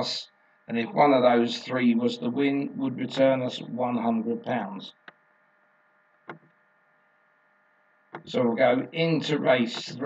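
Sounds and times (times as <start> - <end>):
light steady hum: 0.0 - 10.0.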